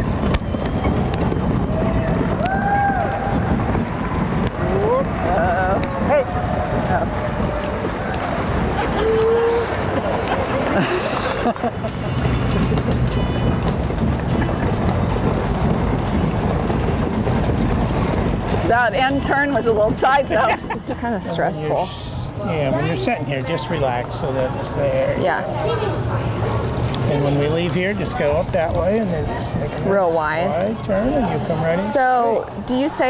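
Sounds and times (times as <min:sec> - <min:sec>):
horse hooves clip-clopping: 0:00.0 - 0:21.2
hubbub of indistinct voices: 0:00.0 - 0:33.0.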